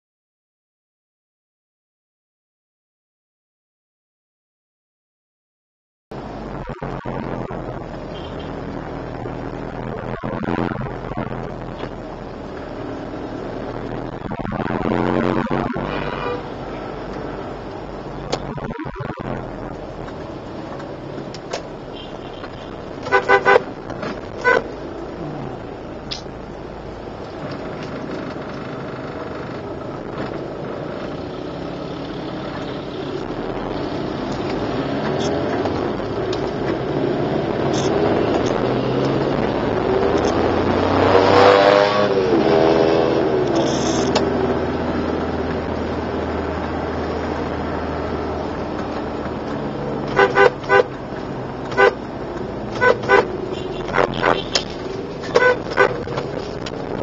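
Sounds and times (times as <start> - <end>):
car road and engine noise: 6.1 - 57.0
passing pitched sound: 12.8 - 20.1
car horn short toots: 50.1 - 50.9, 52.8 - 54.7, 55.3 - 56.0.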